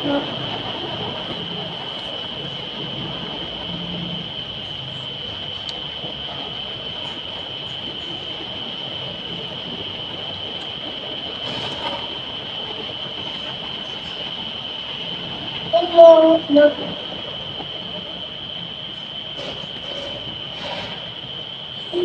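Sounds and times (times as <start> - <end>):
background hiss: 0.0 - 22.0
high-pitched whine: 0.0 - 22.0
boy calling out: 15.8 - 17.0.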